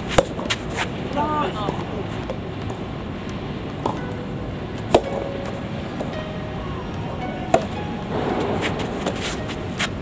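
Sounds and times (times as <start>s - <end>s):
racket hitting tennis ball: 0.0s - 2.8s, 4.8s - 6.2s, 6.9s - 10.0s
steady background hiss: 0.0s - 10.0s
faint ball bounces or footsteps: 6.9s - 10.0s.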